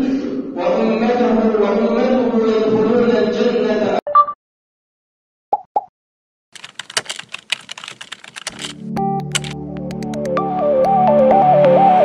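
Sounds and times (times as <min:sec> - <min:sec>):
keyboard typing clicks: 0:06.6 - 0:09.6.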